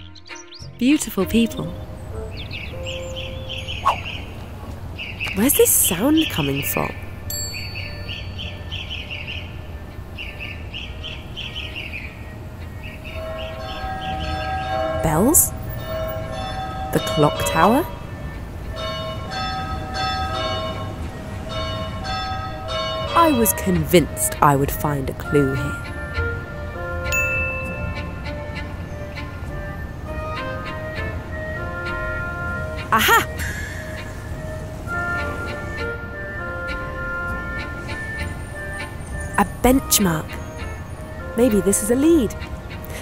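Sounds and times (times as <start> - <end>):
bird chirping: 0.0 - 18.5
low street rumble: 0.6 - 43.0
clock tower bells chiming: 5.4 - 9.0, 13.1 - 25.9, 27.1 - 28.3.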